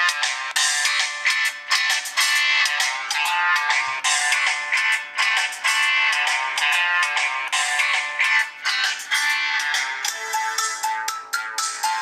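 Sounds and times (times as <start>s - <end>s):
phone ringtone melody: 0.0s - 12.0s.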